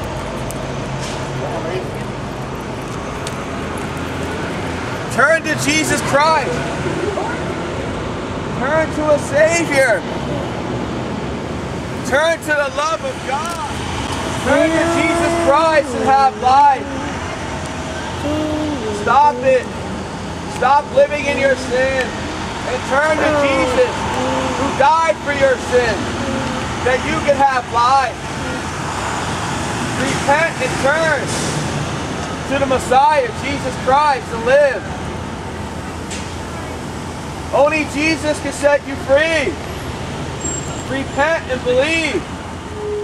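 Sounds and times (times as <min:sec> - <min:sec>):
road traffic: 0:00.0 - 0:43.0.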